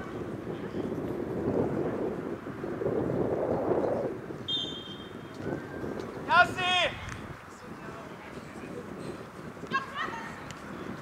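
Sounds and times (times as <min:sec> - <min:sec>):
wind buffeting microphone: 0:00.0 - 0:11.0
short high whistle: 0:04.5 - 0:05.2.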